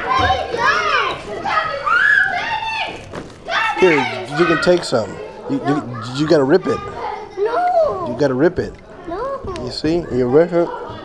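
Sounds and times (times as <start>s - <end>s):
children calling and squealing: 0.0s - 11.0s.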